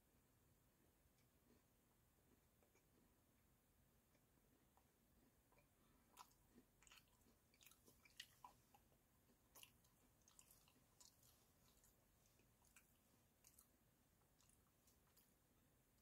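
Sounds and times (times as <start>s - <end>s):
faint crunchy chewing: 0.8s - 16.0s.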